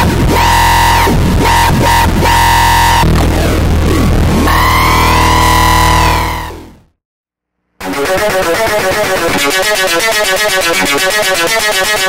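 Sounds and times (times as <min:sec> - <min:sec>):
distorted bitcrushed synthesizer tone: 0:00.0 - 0:06.9.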